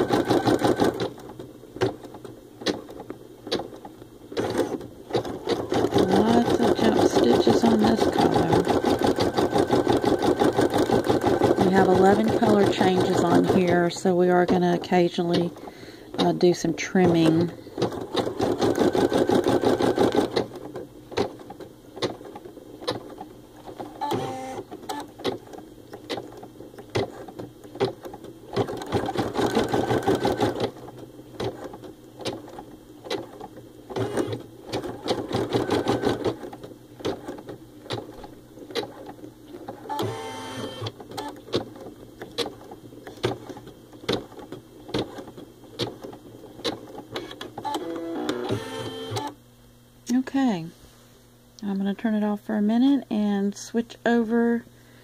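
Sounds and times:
embroidery machine needle clatter: 0:00.0 - 0:30.8.

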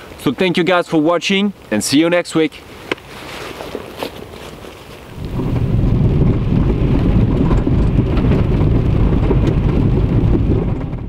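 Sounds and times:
car rumbling over rough track: 0:05.1 - 0:11.0.

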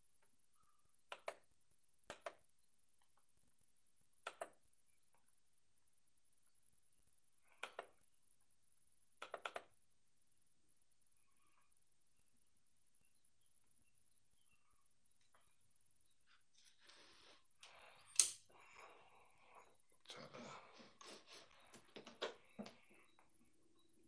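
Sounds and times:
faint high-pitched whine: 0:00.0 - 0:24.0.

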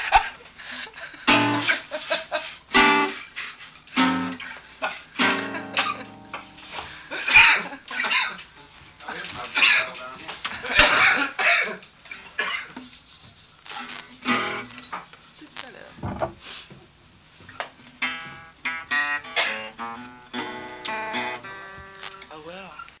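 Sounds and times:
laughter: 0:00.0 - 0:03.8, 0:04.8 - 0:08.5, 0:10.5 - 0:11.8.

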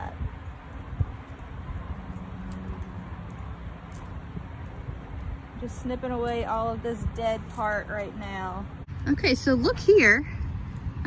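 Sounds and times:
rustling stems: 0:00.5 - 0:08.8.

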